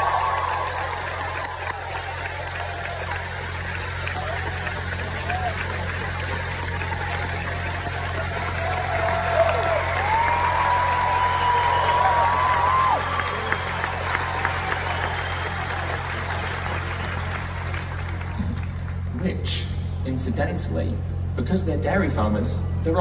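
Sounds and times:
drawn-out whoops: 0:00.0 - 0:03.4, 0:06.8 - 0:16.8
crowd applauding and cheering: 0:00.0 - 0:20.0
steady low hum: 0:00.0 - 0:23.0.

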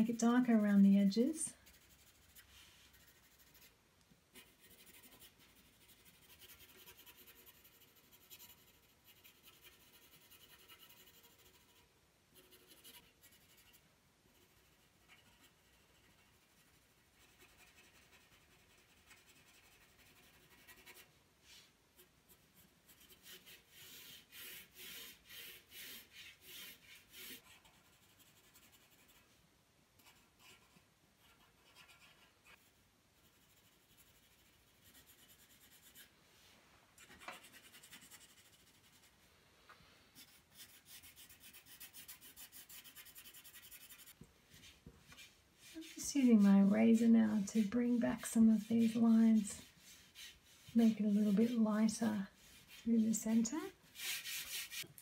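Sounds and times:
pencil scratching on paper: 0:00.0 - 0:03.7, 0:04.3 - 0:29.4, 0:30.0 - 0:36.1, 0:37.0 - 0:39.1, 0:40.2 - 0:54.9.

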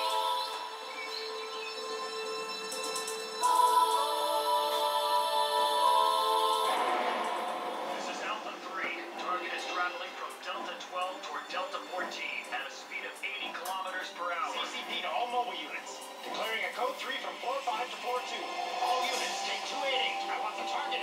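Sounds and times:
background music on television: 0:00.0 - 0:21.0
voices speaking on television: 0:02.8 - 0:21.0.

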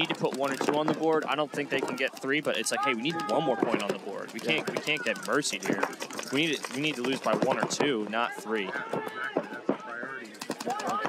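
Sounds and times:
paintball markers popping: 0:00.0 - 0:09.6, 0:10.3 - 0:11.0
commentators talking: 0:00.0 - 0:11.0.

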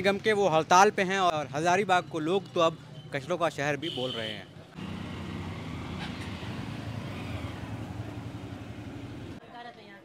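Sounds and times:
street noise: 0:00.0 - 0:09.8
motorcycle engine running: 0:04.8 - 0:09.4.

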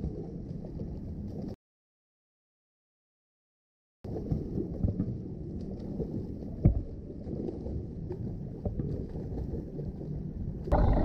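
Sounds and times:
muffled swimming pool water: 0:00.0 - 0:01.6, 0:04.0 - 0:11.0
underwater water and bubbles: 0:00.0 - 0:01.6, 0:04.0 - 0:11.0.

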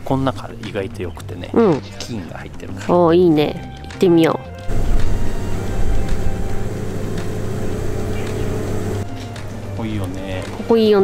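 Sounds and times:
faint background music: 0:00.0 - 0:11.0
vehicle cabin drone: 0:04.7 - 0:09.0.

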